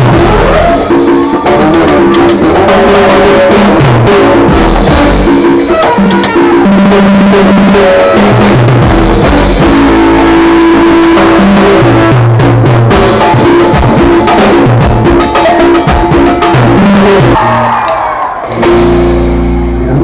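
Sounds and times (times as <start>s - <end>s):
held keyboard notes: 0.0s - 17.4s
bass line: 0.0s - 20.0s
drum kit: 0.0s - 20.0s
percussion: 0.0s - 20.0s.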